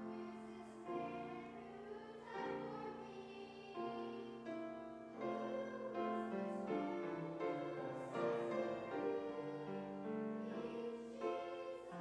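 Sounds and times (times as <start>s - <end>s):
slow piano chords: 0.0s - 12.0s.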